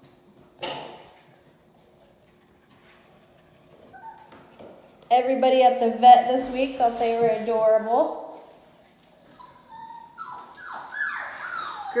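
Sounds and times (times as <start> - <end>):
puppies whimpering: 3.7 - 4.4, 9.2 - 12.0.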